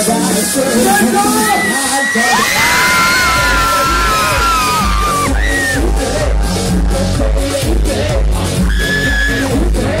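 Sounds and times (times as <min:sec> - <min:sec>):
loud live concert music: 0:00.0 - 0:10.0
heavy kick drum beat: 0:02.9 - 0:10.0.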